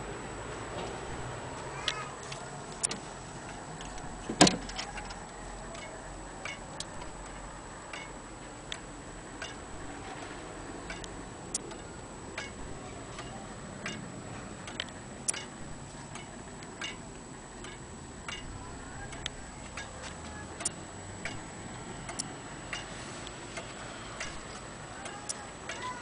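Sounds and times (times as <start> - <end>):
wall clock ticking: 1.1 - 26.0.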